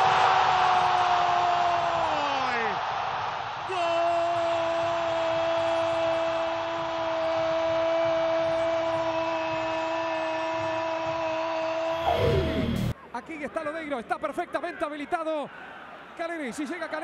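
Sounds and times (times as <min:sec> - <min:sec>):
stadium crowd noise: 0:00.0 - 0:17.0.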